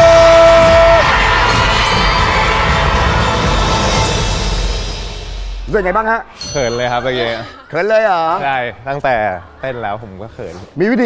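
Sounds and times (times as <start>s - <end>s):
audience cheering: 0.0s - 4.3s
show music: 0.0s - 7.9s.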